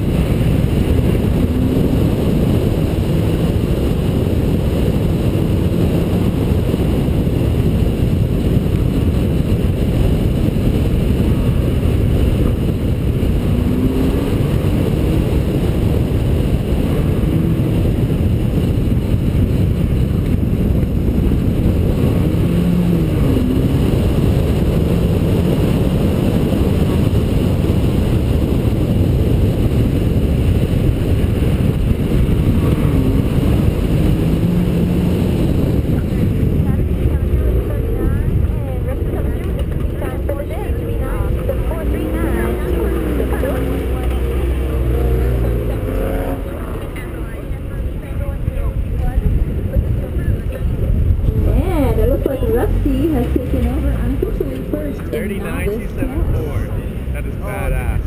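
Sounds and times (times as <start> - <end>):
car engine revving: 0.0 - 58.0
wind rumble on microphone: 0.0 - 58.0.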